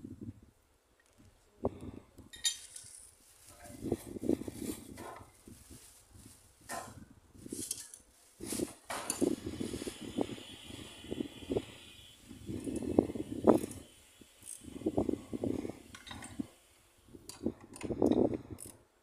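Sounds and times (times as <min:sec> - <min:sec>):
tool work on pump fittings: 0:07.6 - 0:18.8.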